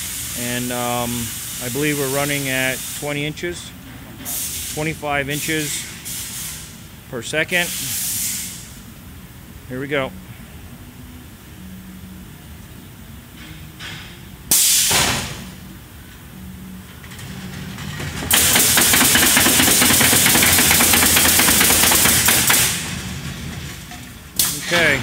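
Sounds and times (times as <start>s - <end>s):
air hiss: 0.0s - 3.6s, 4.2s - 6.9s, 7.5s - 8.9s, 14.0s - 15.6s, 18.3s - 23.0s
low machine hum: 0.0s - 25.0s
compressed air blast: 4.3s - 6.8s, 7.5s - 8.8s, 14.5s - 15.6s, 18.3s - 23.2s
pneumatic nail guns firing: 13.9s - 15.6s, 17.7s - 23.4s, 24.4s - 25.0s.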